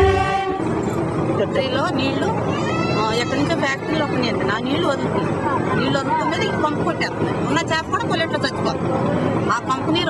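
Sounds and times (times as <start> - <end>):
steady background noise: 0.0 - 10.0
woman talking: 1.4 - 2.3, 3.0 - 8.8, 9.4 - 10.0.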